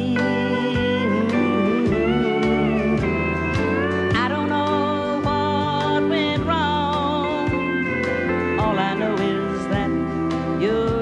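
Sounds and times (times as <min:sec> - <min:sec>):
bass and drums: 0:00.0 - 0:11.0
pedal steel guitar sliding notes: 0:00.0 - 0:11.0.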